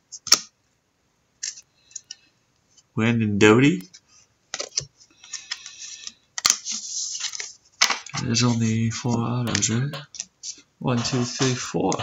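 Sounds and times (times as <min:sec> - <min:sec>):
cards rustling: 0:04.5 - 0:12.0.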